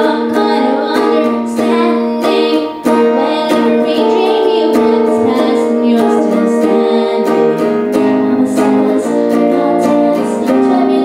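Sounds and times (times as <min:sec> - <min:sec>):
strummed guitar chords: 0:00.0 - 0:11.0
woman singing: 0:00.0 - 0:11.0.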